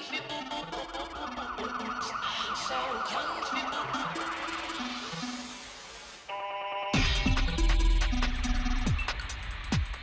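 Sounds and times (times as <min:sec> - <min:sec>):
electronic dance music: 0:00.0 - 0:10.0
siren-like warbling tone: 0:00.1 - 0:05.8.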